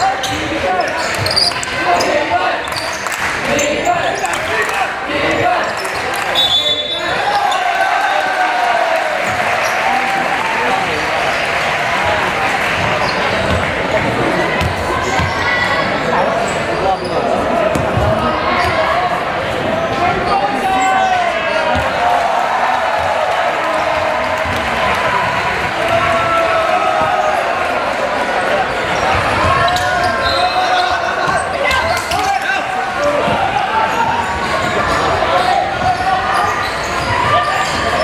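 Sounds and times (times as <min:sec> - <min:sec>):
chatter and shouting of people: 0:00.0 - 0:38.0.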